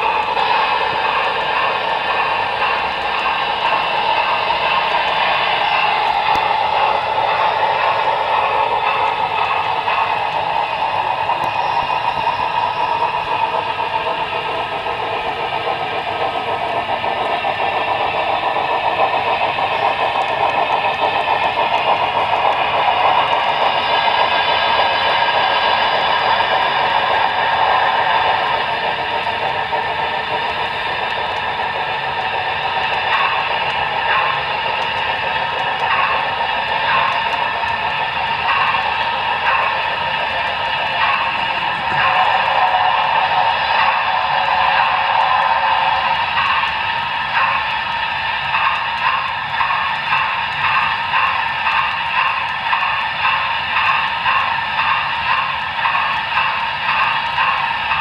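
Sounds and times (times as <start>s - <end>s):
model train motor hum: 0.0s - 58.0s
wheel clatter on rails: 0.0s - 58.0s.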